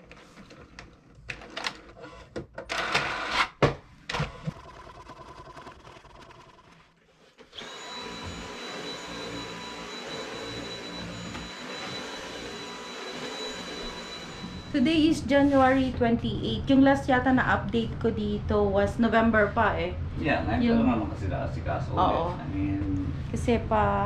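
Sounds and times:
vacuum cleaner motor whine: 7.5 - 16.0.

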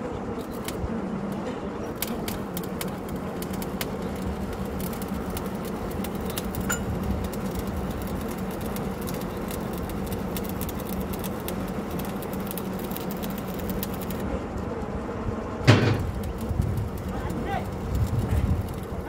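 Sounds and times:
drilling rig machine hum: 0.2 - 19.0
sharp clicks and ticks: 2.0 - 14.2, 16.0 - 19.0.

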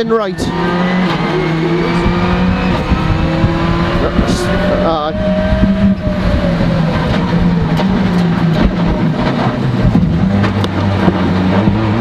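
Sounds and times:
rally car engine under load: 0.0 - 12.0
car knocks and rattles: 5.5 - 12.0.

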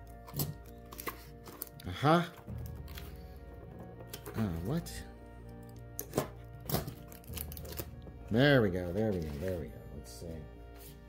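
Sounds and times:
scissors cutting packing tape: 0.0 - 1.8, 6.0 - 7.9.

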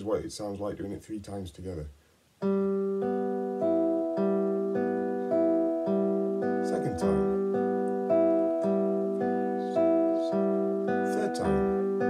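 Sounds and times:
nylon-string guitar plucked: 2.4 - 12.0.

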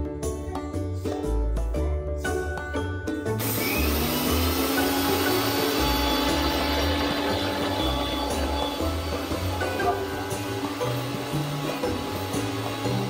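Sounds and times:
background music: 0.0 - 13.0
blender motor running: 3.4 - 13.0.

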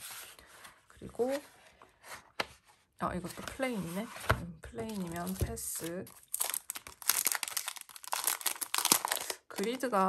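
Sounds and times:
plastic packaging crinkling: 4.9 - 10.0.

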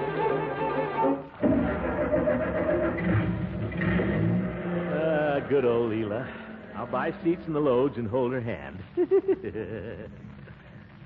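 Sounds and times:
orchestral strings: 0.0 - 8.7.

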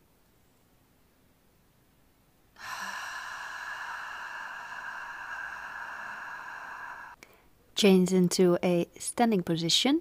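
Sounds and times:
woman exhaling with a hiss: 2.6 - 7.4.

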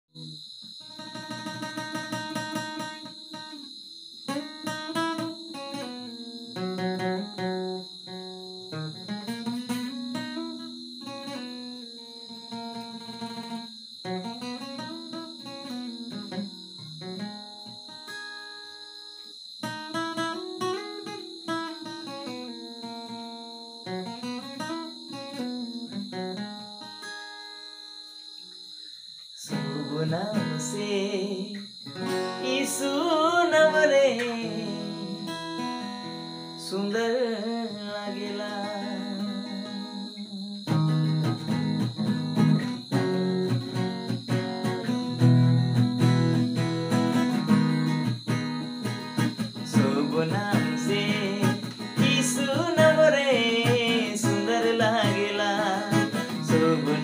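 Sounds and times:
acoustic guitar playing: 0.2 - 28.6, 29.4 - 57.0.

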